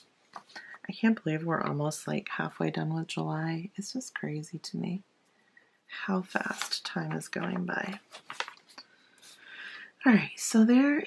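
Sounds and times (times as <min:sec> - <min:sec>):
paper rustling: 0:06.4 - 0:09.4.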